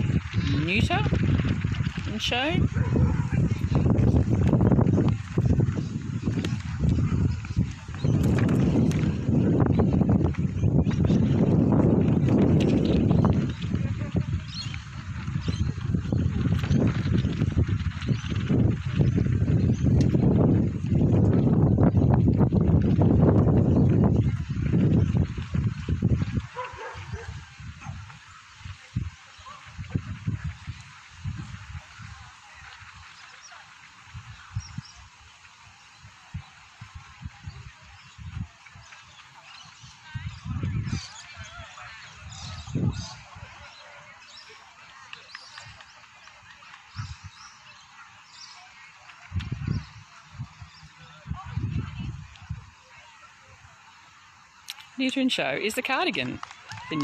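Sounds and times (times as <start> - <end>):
voices: 0.0 - 23.0, 23.6 - 57.0
wind buffeting a microphone: 0.0 - 57.0
dog barking: 2.7 - 3.4, 26.6 - 28.0.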